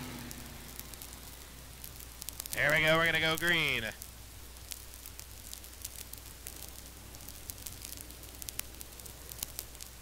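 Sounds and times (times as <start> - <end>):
crackling static: 0.0 - 10.0
low electrical hum: 0.0 - 10.0.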